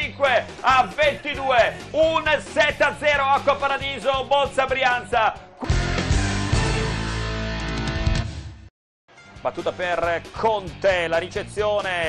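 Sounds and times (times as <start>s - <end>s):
guitar music jingle: 5.6s - 9.9s.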